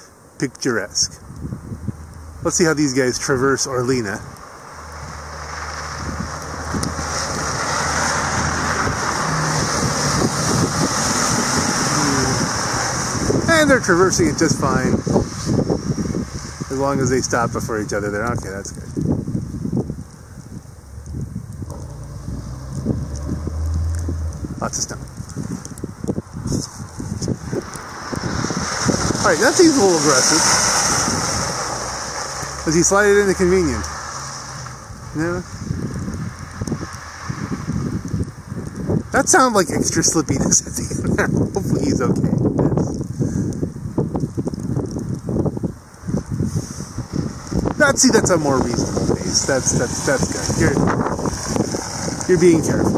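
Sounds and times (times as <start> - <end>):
car passing with steady hiss: 0.0 - 18.7, 20.6 - 26.9, 27.5 - 41.1, 46.0 - 52.9
wind buffeting microphone: 0.8 - 52.9
vehicle engine driving by: 1.8 - 16.9, 20.8 - 26.1, 27.3 - 38.2.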